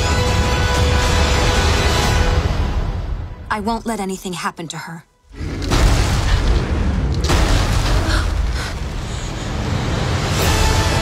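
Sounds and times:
trailer music: 0.0 - 4.0, 5.1 - 11.0
deep boom with dense rumble: 5.4 - 9.2.

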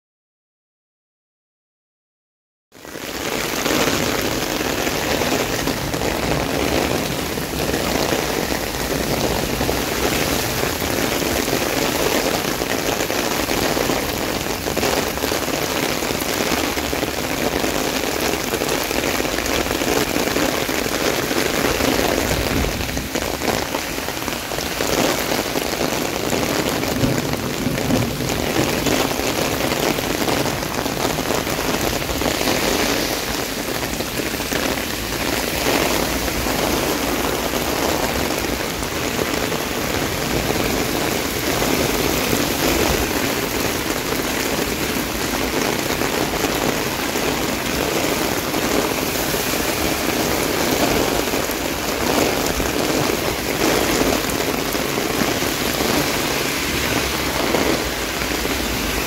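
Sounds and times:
heavy rain on pavement: 2.7 - 59.0.

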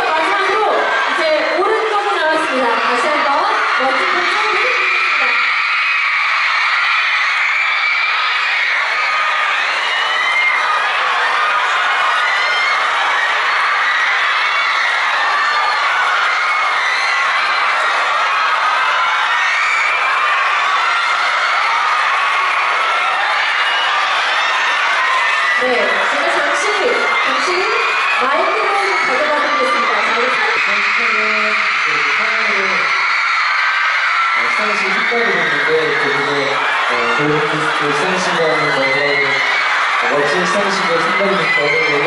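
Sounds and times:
crowd screaming and cheering: 0.0 - 42.0.

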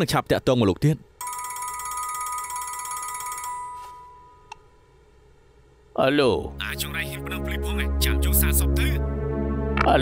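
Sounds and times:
telephone ringing: 1.2 - 4.5.

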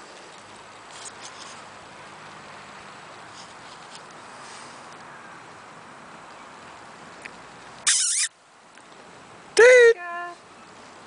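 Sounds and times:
dog squealing: 7.8 - 8.3.

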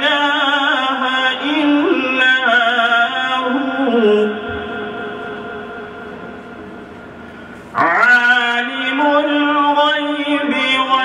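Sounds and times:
man reciting over a pa: 0.0 - 6.2, 7.7 - 11.0.

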